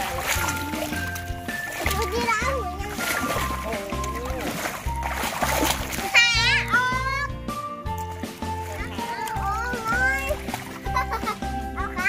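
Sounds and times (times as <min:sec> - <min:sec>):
children splashing water: 0:00.0 - 0:12.0
music with repeating bass line: 0:00.0 - 0:12.0.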